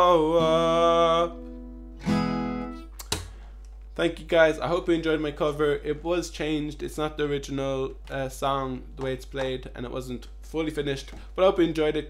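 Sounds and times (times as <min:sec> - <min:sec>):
acoustic guitar chord ringing: 0:00.0 - 0:02.9.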